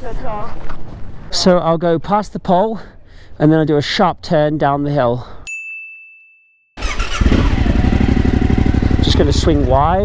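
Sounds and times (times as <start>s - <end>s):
motorcycle engine running slowly: 6.9s - 10.0s.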